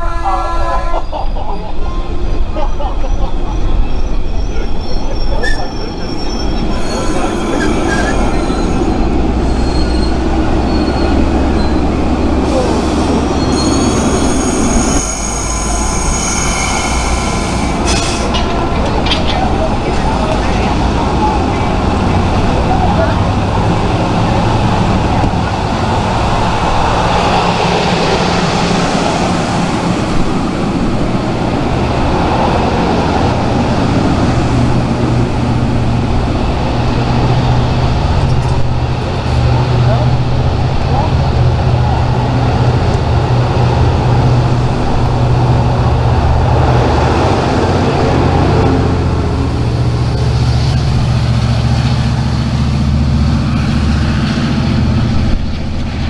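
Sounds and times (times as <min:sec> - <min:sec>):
train wheels rumbling on rail: 0:00.0 - 0:56.0
high-pitched wheel squeal: 0:03.1 - 0:18.5.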